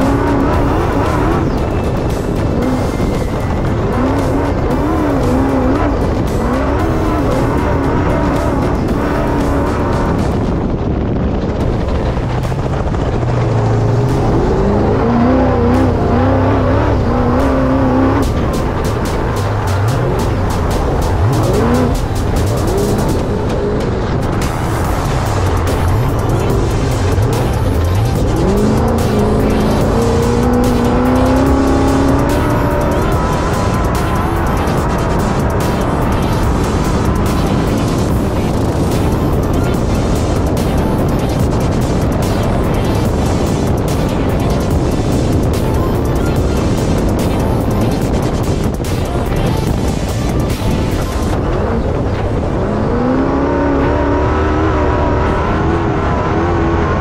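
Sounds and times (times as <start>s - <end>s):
race car engine revving: 0.0s - 57.0s
rumble of wind and tyres on dirt: 0.0s - 57.0s.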